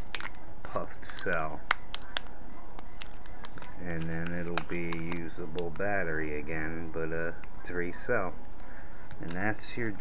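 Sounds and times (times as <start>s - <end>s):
faint clicks and crinkles of plastic: 0.0s - 6.1s, 8.4s - 10.0s
steady low hum: 0.0s - 10.0s
man's voice: 3.8s - 8.4s, 9.2s - 10.0s.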